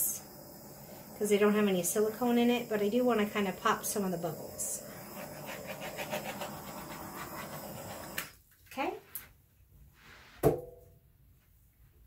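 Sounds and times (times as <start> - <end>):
torch flame hissing: 0.0 - 8.4.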